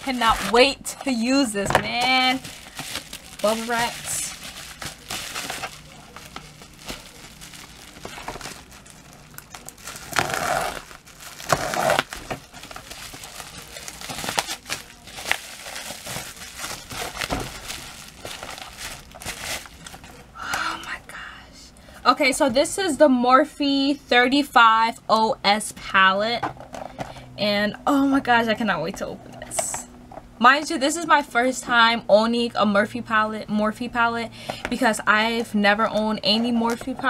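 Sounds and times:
bubble wrap crinkling: 0.0s - 21.0s.

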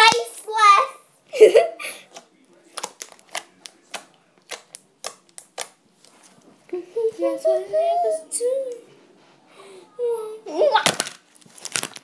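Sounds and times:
slime clicking and popping: 2.7s - 5.8s.

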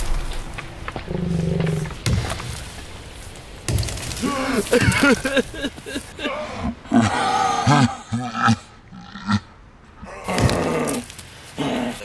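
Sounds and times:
axe chopping into tree trunk: 1.9s - 2.8s, 3.7s - 4.9s.

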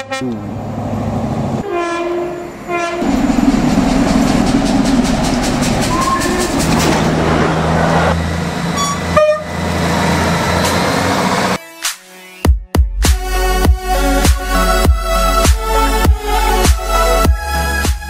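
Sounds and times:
train horn blasts: 0.0s - 0.4s, 1.6s - 3.2s, 8.8s - 9.6s
two-note train horn: 1.6s - 3.1s, 8.8s - 9.5s
diesel engine humming: 2.5s - 11.6s
steam locomotive rhythmic beat: 3.2s - 7.4s, 10.2s - 18.0s.

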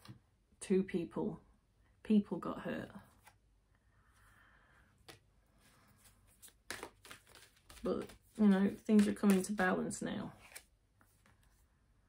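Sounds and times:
cards rustling and sliding: 5.0s - 9.7s, 10.3s - 11.7s.

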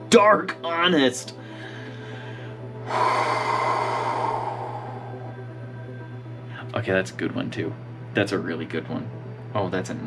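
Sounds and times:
man breathing out breathily: 1.4s - 6.5s.

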